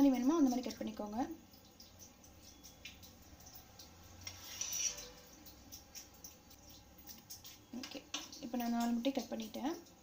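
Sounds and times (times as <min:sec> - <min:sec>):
knife scraping steel plate: 0:04.2 - 0:05.3.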